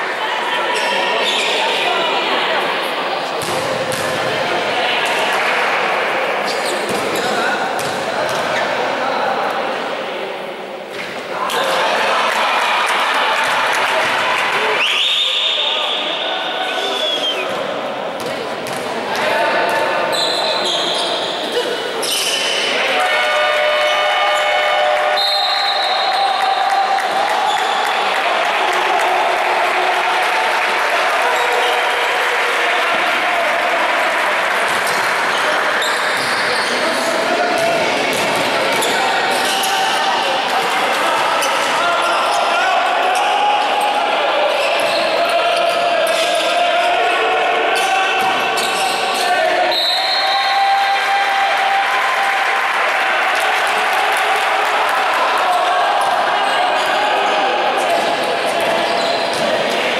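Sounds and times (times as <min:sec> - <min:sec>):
basketball bouncing on court: 0:03.4 - 0:04.2, 0:07.8 - 0:08.5, 0:37.6 - 0:38.9
players shouting: 0:18.9 - 0:59.9.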